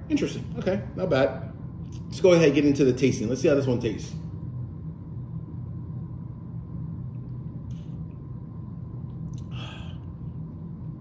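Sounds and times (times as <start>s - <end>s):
low room hum: 0.0s - 11.0s
man sipping a drink: 9.2s - 10.2s
breath out: 9.4s - 10.1s.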